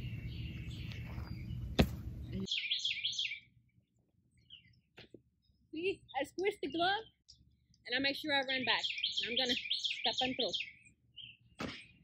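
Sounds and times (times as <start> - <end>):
outdoor background: 0.0 - 12.0
small songbird chirping: 0.0 - 12.0.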